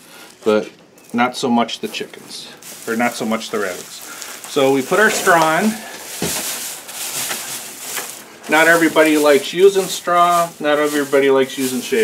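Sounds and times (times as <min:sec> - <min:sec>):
straw rustling and crackling: 0:00.1 - 0:12.0.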